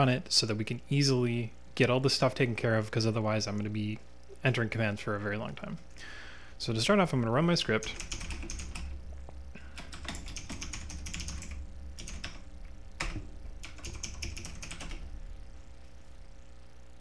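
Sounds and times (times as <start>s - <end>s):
low hum: 2.4s - 17.0s
typing on keyboard: 7.8s - 9.0s, 9.7s - 12.4s, 13.0s - 15.0s.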